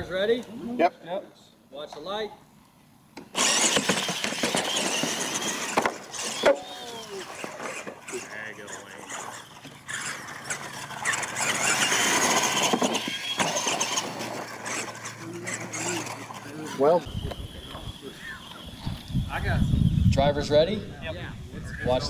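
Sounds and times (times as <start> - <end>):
toy truck motors whining: 3.2 - 20.1.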